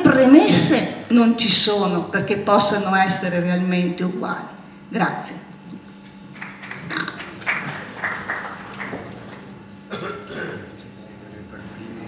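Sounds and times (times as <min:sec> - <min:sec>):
audience applause: 0:06.3 - 0:09.6.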